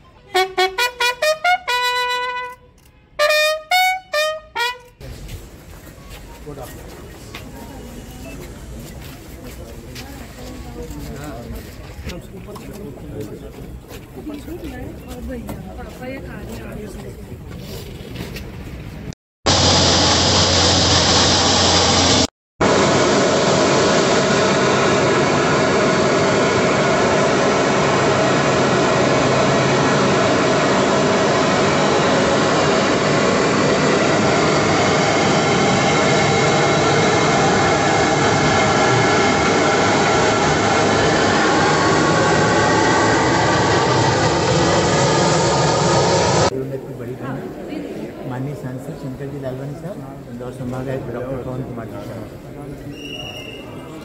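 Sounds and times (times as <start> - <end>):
aircraft engines rushing and whining: 19.5 - 46.5.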